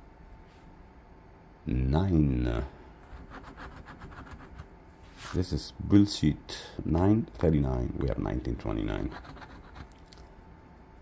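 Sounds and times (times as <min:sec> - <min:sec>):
coin scraping scratch-off ticket: 0:09.0 - 0:09.9.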